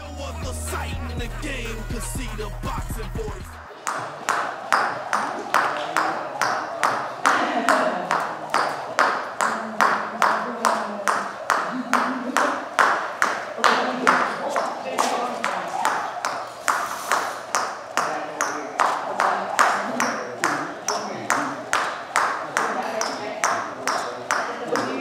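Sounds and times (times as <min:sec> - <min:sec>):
jump rope slapping floor: 0:03.7 - 0:25.0.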